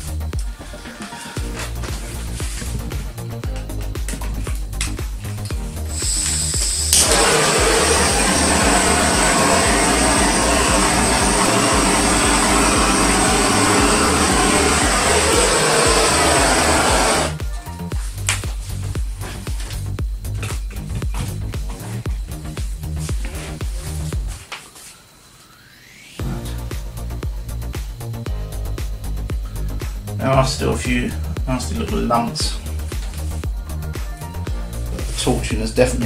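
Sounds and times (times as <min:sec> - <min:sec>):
background music with steady beat: 0:00.0 - 0:24.6, 0:26.2 - 0:36.0
gas torch flame hissing: 0:00.0 - 0:36.0
torch igniting click: 0:04.7 - 0:15.4.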